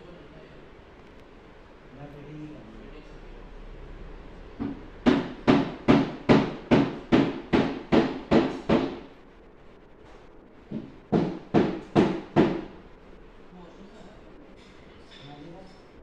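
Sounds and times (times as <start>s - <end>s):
knocks on something hard: 10.7s - 12.7s.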